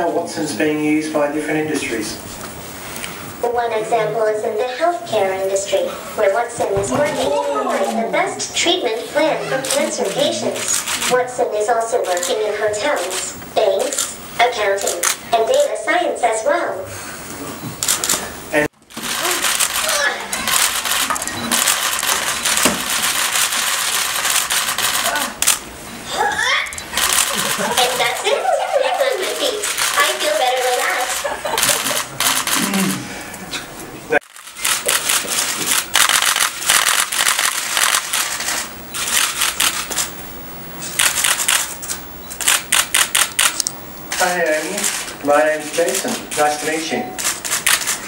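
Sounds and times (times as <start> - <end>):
camera shutters clicking: 9.6 - 11.2, 12.0 - 15.8, 17.8 - 18.2, 18.9 - 25.6, 26.8 - 28.4, 29.1 - 32.8, 34.2 - 40.1, 40.8 - 48.0.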